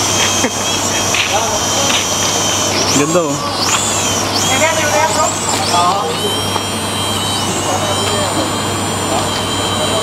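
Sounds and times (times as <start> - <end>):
toy drone propellers whining: 0.0 - 10.0.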